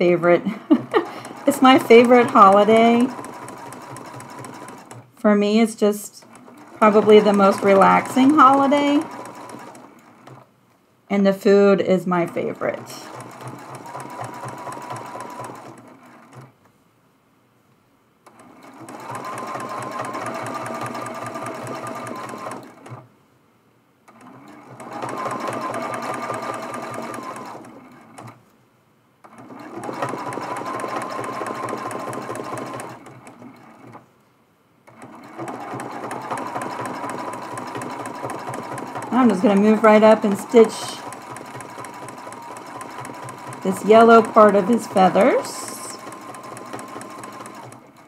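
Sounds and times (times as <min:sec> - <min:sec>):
sewing machine stitching: 0:00.0 - 0:10.5, 0:11.5 - 0:16.6, 0:18.2 - 0:23.1, 0:24.1 - 0:28.4, 0:29.2 - 0:34.1, 0:34.8 - 0:48.0.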